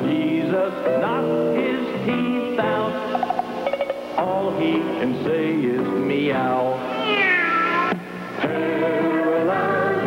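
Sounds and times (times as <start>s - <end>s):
song accompaniment: 0.0s - 10.0s
long falling meows: 6.9s - 8.0s.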